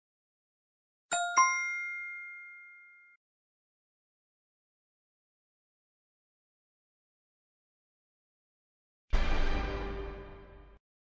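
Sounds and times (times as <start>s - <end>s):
two-note chime dings: 1.1s - 3.2s.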